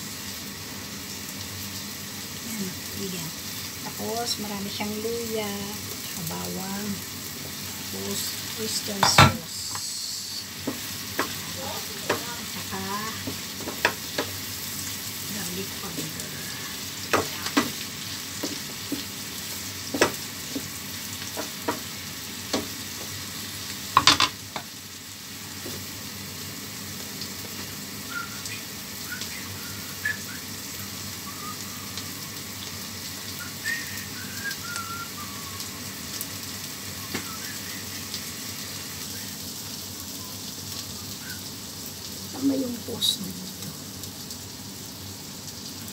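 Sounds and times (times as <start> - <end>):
shrimp sizzling in oil: 0.0 - 45.9.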